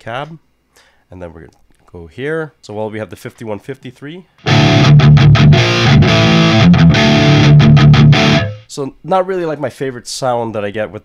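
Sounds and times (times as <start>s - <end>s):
distorted electric guitar riff: 4.4s - 8.7s.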